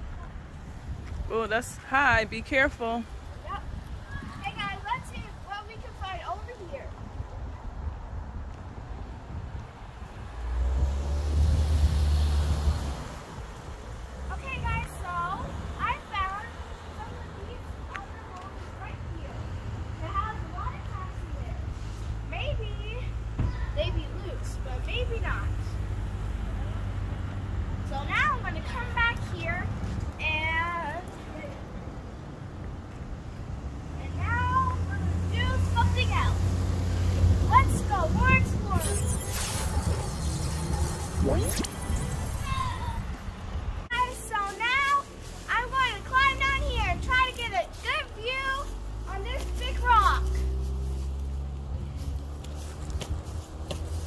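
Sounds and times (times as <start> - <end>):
low rumble: 38.0 - 43.9.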